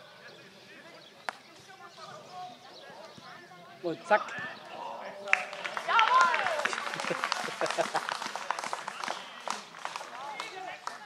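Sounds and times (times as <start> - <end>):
men calling out and chatting: 0.0 - 11.0
short sharp claps: 5.3 - 11.0.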